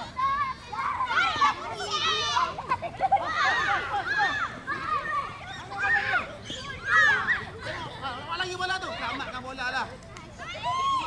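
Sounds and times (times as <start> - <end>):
children shouting: 0.0 - 9.3, 10.3 - 11.0.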